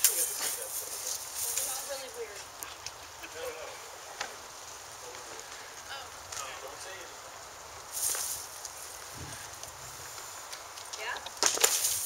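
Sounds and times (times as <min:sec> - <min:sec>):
rustling scuff: 0:00.0 - 0:02.0, 0:07.9 - 0:09.5.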